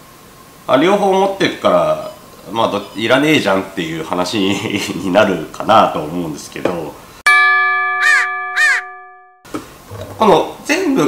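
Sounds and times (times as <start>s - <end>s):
bell-like chime: 7.3s - 9.4s.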